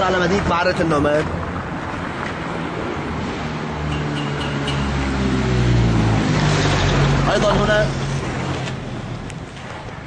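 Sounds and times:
vehicle engine humming: 1.3 - 9.5.

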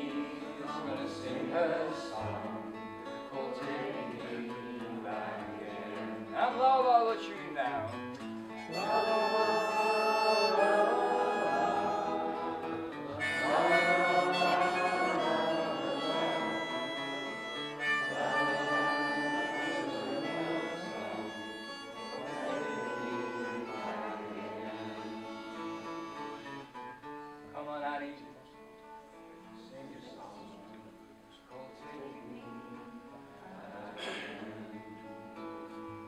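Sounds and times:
acoustic guitar: 0.0 - 36.0
harmonica melody: 7.9 - 27.5.

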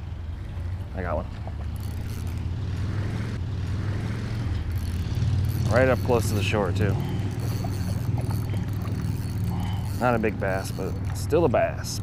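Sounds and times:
fishing reel being cranked: 1.7 - 3.0, 4.5 - 12.0.

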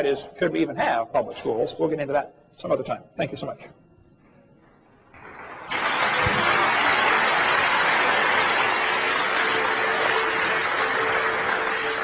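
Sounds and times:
faint steady hum: 0.0 - 12.0
audience applauding: 5.2 - 12.0.

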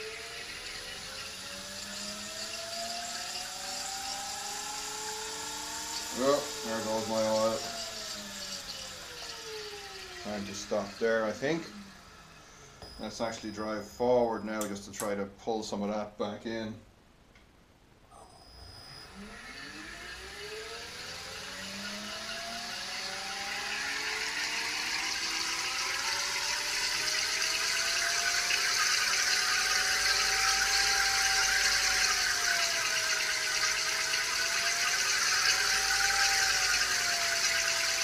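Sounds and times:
electric motor whine: 0.0 - 14.4, 18.2 - 38.0.

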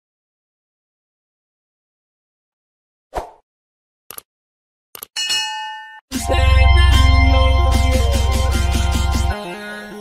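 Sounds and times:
bright bell ding: 5.2 - 6.0
music with heavy bass: 6.1 - 9.4.

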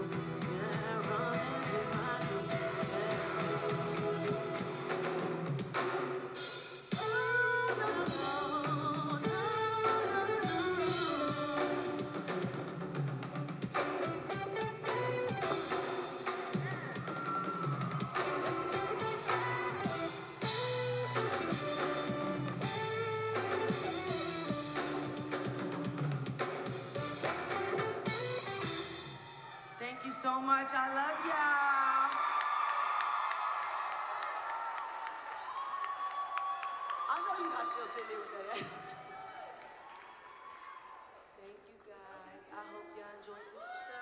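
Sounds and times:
live band music: 0.0 - 17.3, 18.0 - 29.4
drums: 0.0 - 29.9
guitar chords: 18.2 - 29.0.

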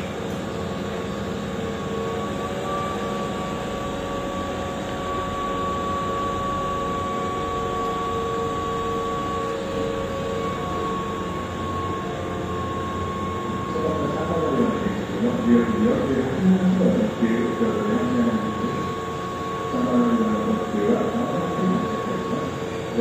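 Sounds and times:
station background noise: 0.0 - 23.0
train equipment humming: 0.0 - 23.0
constant high tone: 0.1 - 23.0.

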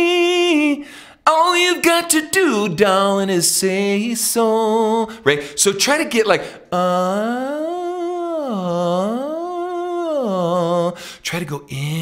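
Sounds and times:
man singing gliding tone: 6.7 - 12.0.

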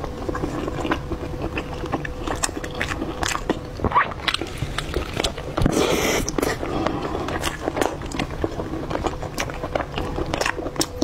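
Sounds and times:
chewing and biting food: 0.0 - 11.0.

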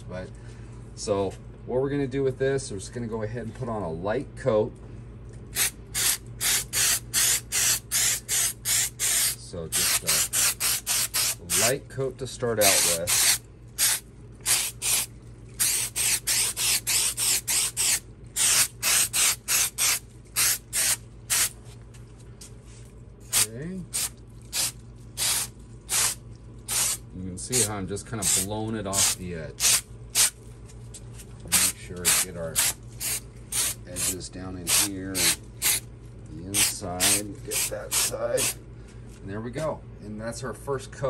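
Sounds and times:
aerosol spray can hissing: 5.6 - 11.7, 12.7 - 21.5, 23.3 - 27.0, 29.0 - 30.3, 31.5 - 35.8, 36.6 - 38.6.

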